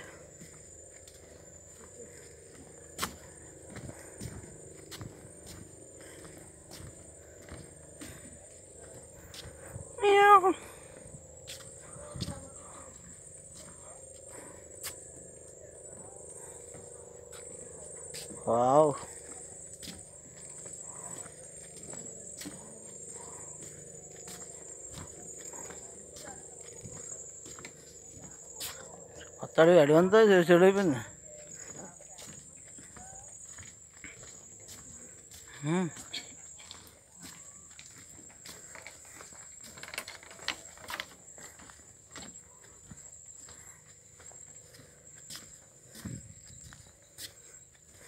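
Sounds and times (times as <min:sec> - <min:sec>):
footstep on wooden boardwalk: 0:00.0 - 0:48.0
steady high-pitched whine: 0:00.0 - 0:48.0.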